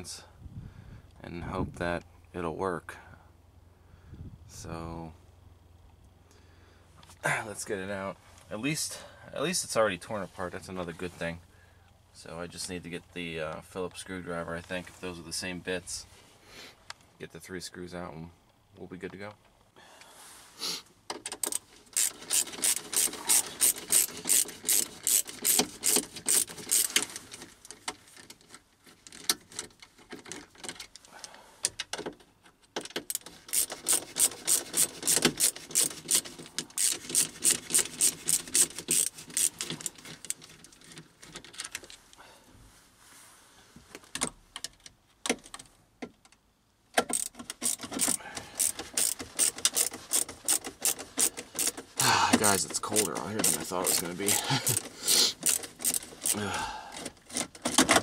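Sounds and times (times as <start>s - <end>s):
ratcheting screwdriver clicking: 21.1s - 27.2s, 32.9s - 40.8s, 47.0s - 58.0s.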